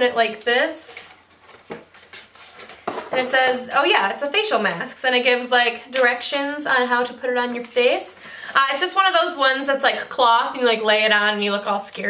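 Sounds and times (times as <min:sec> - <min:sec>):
card packaging rustling: 0:00.9 - 0:03.4.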